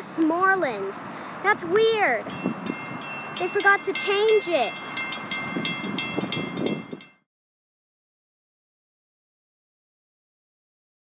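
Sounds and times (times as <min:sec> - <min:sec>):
level-crossing warning bell ringing: 0:02.2 - 0:07.2.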